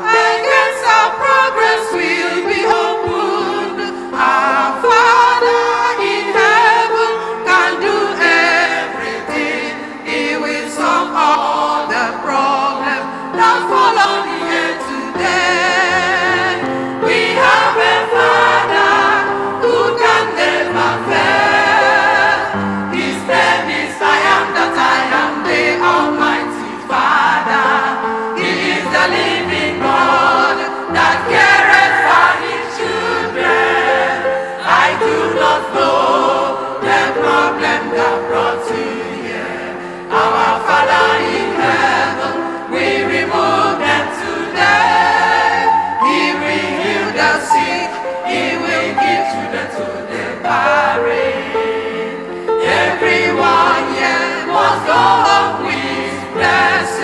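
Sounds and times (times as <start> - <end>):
choir singing gospel: 0.0 - 57.0.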